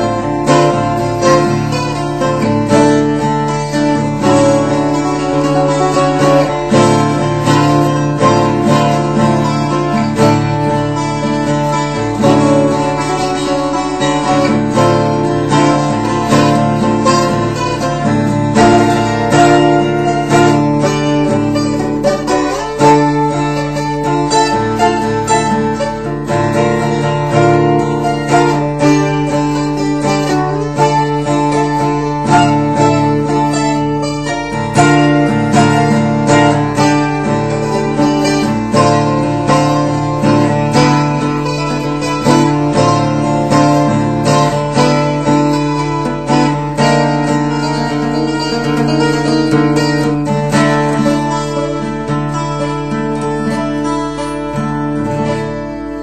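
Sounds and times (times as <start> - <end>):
acoustic guitar arpeggios: 0.0 - 56.0.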